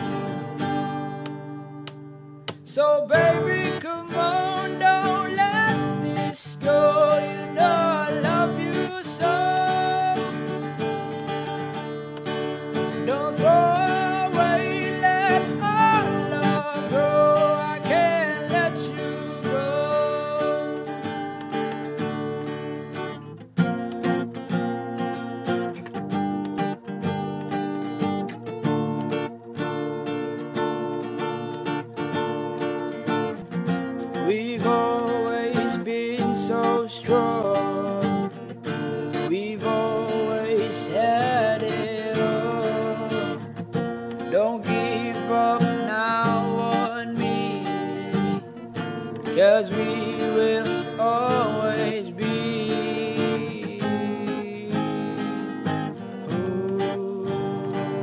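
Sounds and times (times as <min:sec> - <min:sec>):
strummed acoustic guitar: 0:00.0 - 0:58.0
lead singing voice: 0:02.6 - 0:11.1, 0:12.8 - 0:21.3, 0:34.2 - 0:58.0.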